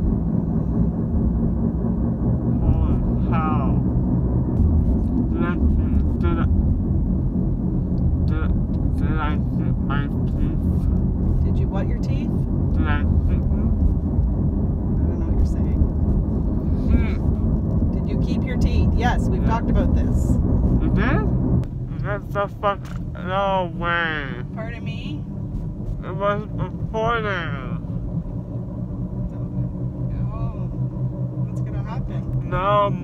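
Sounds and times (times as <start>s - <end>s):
car cabin road rumble: 0.0s - 33.0s
young man talking: 5.3s - 6.5s, 8.3s - 10.8s, 20.8s - 21.3s, 21.9s - 25.1s, 26.0s - 27.9s, 32.4s - 33.0s.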